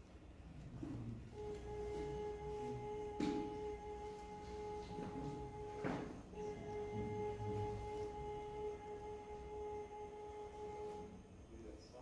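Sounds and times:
steady high tone: 1.3s - 12.0s.

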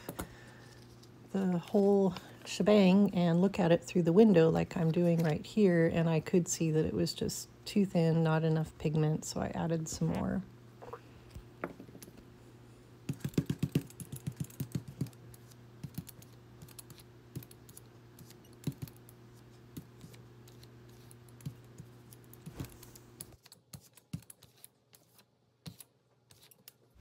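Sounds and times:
steady low hum: 0.0s - 23.4s.

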